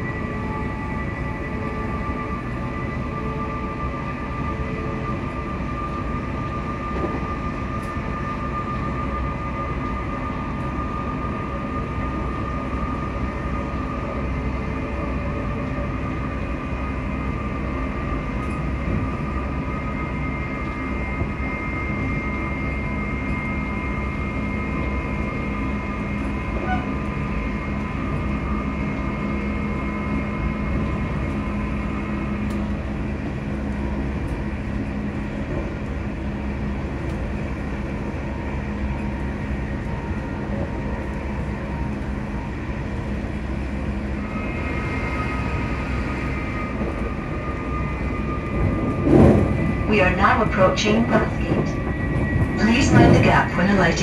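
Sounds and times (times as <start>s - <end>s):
low hum: 0.0s - 54.0s
train wheels rumbling on track: 0.0s - 54.0s.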